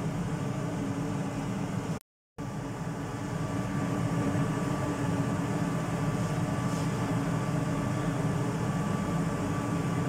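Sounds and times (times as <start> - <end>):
faint steady whine: 0.0 - 10.0
mechanical hum: 0.0 - 10.0.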